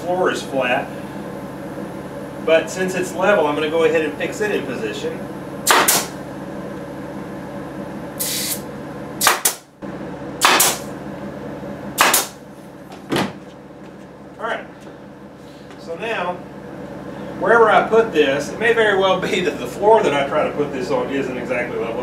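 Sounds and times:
steady hum: 0.0 - 22.0
nail gun firing: 5.6 - 6.2, 9.2 - 9.7, 10.4 - 10.9, 12.0 - 12.4
air hiss: 8.2 - 8.6.

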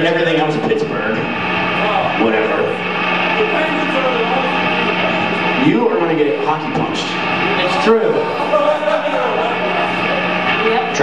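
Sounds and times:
low amplifier hum: 0.0 - 11.0
voices talking: 0.0 - 11.0.

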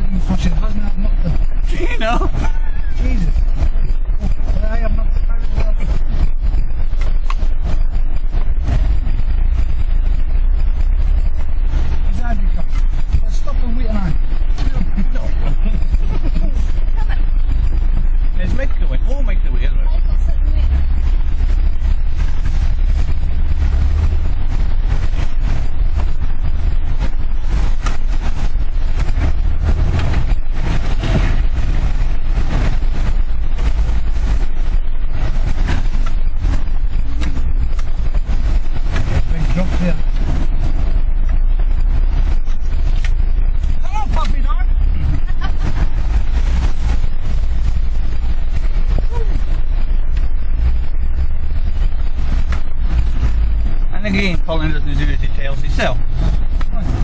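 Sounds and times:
engine rumbling under load: 0.0 - 57.0.

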